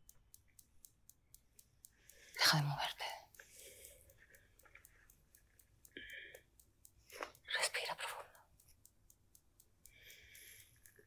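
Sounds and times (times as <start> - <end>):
faint quick ticking: 0.0 - 11.0.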